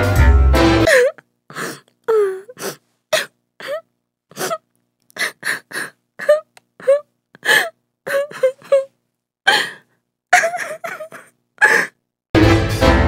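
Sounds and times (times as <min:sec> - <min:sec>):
woman sobbing and gasping: 0:00.8 - 0:12.1.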